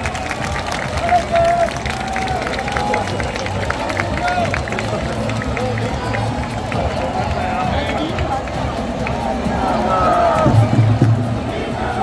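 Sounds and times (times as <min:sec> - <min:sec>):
crowd voices chattering: 0:00.0 - 0:12.0
music: 0:00.0 - 0:12.0.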